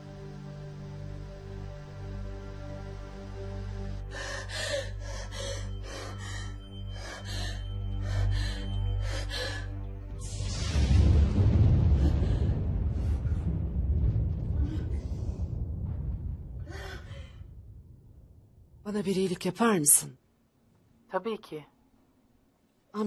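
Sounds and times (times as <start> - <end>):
low musical drone: 0.0 - 14.0
low rumbling swell: 3.2 - 19.0.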